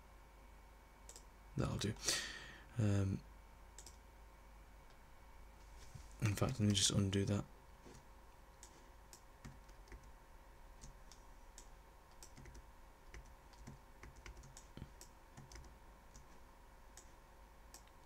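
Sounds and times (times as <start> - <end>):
faint steady hum: 0.0 - 18.0
keyboard and mouse clicks: 1.1 - 1.3, 3.8 - 4.0, 8.6 - 10.1, 10.8 - 16.3, 17.7 - 18.0.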